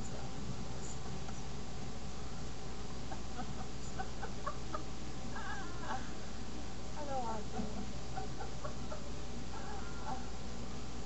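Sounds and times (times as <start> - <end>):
steady low hum: 0.0 - 11.0
woman laughing softly: 3.1 - 6.4, 7.5 - 10.4.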